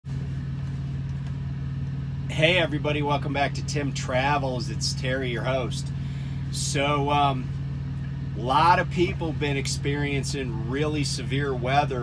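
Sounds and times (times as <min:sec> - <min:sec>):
diesel truck engine idling: 0:00.1 - 0:12.0.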